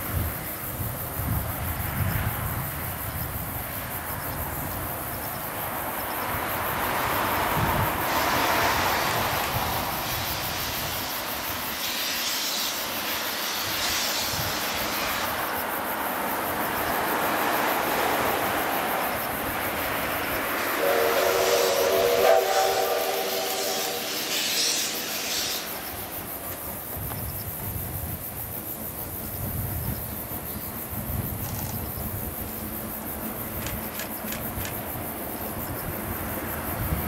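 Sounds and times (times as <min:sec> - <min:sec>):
steam locomotive exhaust: 0:00.0 - 0:37.0
steam whistle chord: 0:20.7 - 0:25.8.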